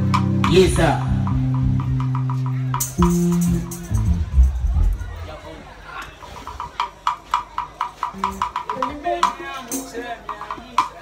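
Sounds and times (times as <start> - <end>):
drum kit taps: 0.0 - 5.0, 6.4 - 11.0.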